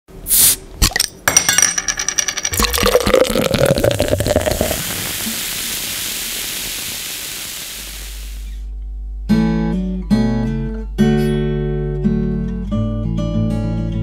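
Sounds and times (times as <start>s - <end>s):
short hiss: 0.3s - 0.6s, 4.9s - 8.7s
glassy clinks: 0.9s - 3.9s
beer pouring into a glass: 2.5s - 8.0s
foam fizzing hiss: 4.0s - 8.7s.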